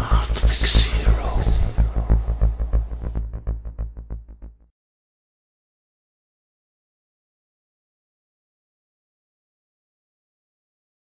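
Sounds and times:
pulsing bass throb: 0.0 - 4.7.

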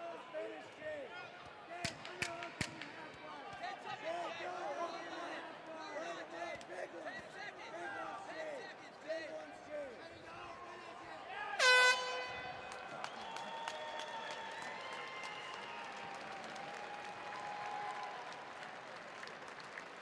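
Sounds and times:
air horn blast: 11.6 - 12.6.

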